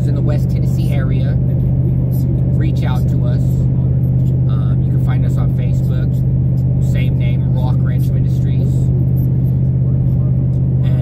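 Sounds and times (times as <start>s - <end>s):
man talking: 0.0s - 11.0s
vehicle cabin drone: 0.0s - 11.0s.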